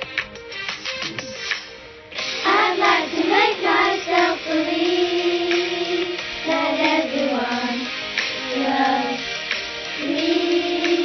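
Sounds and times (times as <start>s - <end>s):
backing music: 0.0s - 11.0s.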